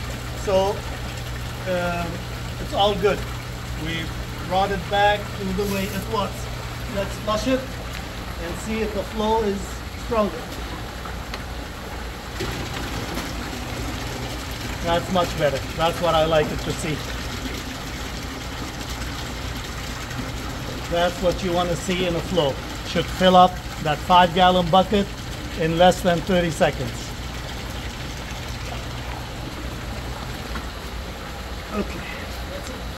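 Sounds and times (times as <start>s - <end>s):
low steady hum: 0.0s - 32.9s
water pouring into plastic barrel: 12.1s - 30.9s.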